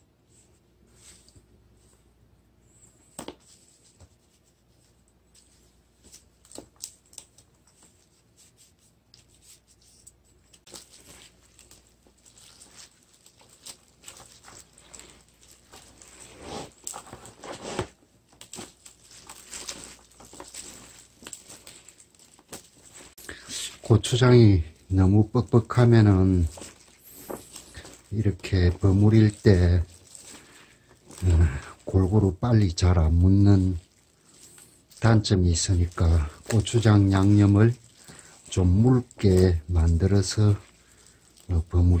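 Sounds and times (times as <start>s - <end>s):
wet rustling of leaves and glove: 5.4s - 17.4s, 18.3s - 42.0s.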